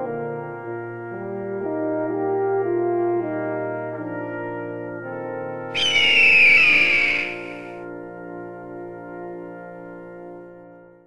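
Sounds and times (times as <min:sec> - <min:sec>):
brass background music: 0:00.0 - 0:10.8
eagle cry screech: 0:05.8 - 0:07.8.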